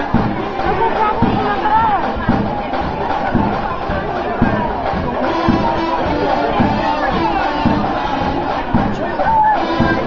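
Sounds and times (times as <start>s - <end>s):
low drum beats: 0.0s - 10.0s.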